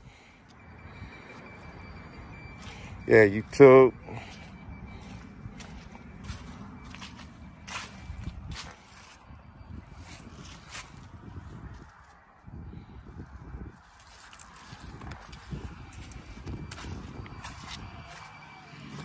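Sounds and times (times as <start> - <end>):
footsteps crunching on dry leaves: 4.1 - 9.3, 10.0 - 12.2, 13.8 - 19.0.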